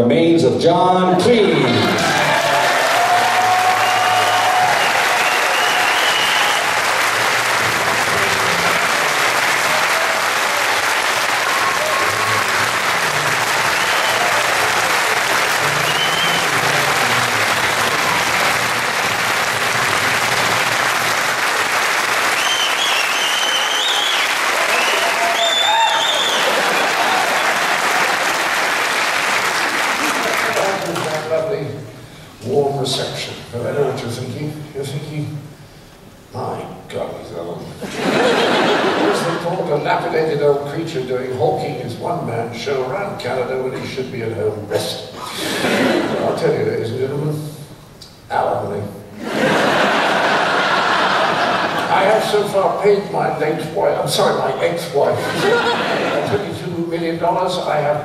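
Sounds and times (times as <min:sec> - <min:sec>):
audience applauding: 0:01.5 - 0:31.4, 0:49.2 - 0:52.2, 0:55.3 - 0:56.4
cheers and whistles: 0:01.8 - 0:07.0, 0:09.6 - 0:12.7, 0:13.5 - 0:18.6, 0:22.3 - 0:28.2.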